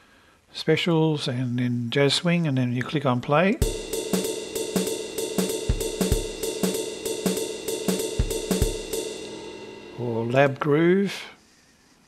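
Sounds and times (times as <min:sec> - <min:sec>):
kick drum hits: 0:03.6 - 0:09.6
cymbal strikes in swung rhythm: 0:03.6 - 0:11.0.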